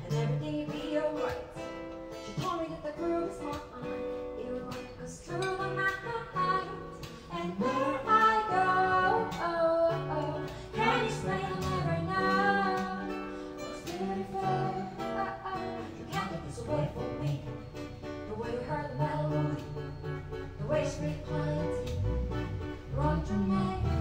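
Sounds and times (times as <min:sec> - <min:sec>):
acoustic guitar: 0:00.0 - 0:24.0
woman singing: 0:00.0 - 0:24.0.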